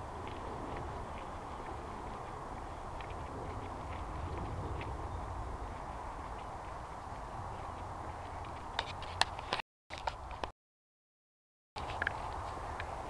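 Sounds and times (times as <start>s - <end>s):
steady low rumble: 0.0s - 8.8s.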